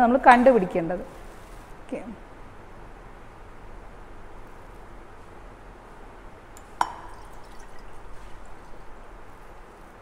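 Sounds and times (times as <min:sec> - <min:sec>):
liquid drop plink: 0:06.6 - 0:07.6.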